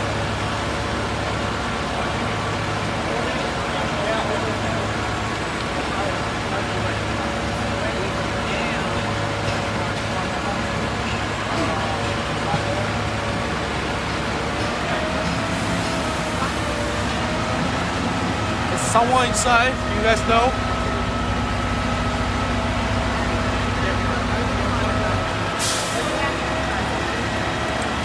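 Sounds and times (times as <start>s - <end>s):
diesel engines droning: 0.0s - 28.0s.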